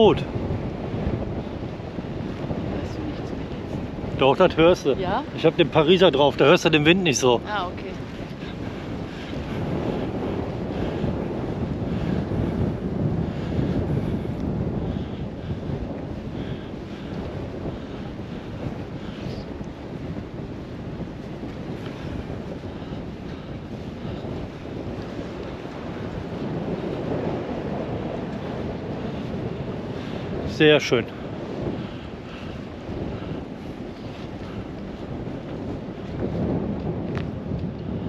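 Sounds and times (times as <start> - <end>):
wind blowing over microphone: 0.0 - 38.0.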